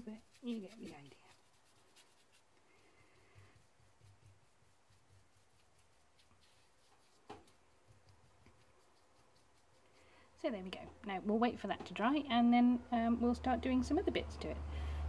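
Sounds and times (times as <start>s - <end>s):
paintbrush rubbing on fabric: 0.0s - 10.8s.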